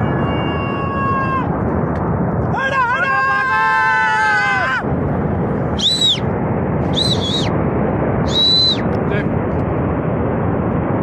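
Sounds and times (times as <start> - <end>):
shrill whistles: 5.8 - 6.2, 6.9 - 7.5, 8.3 - 8.9.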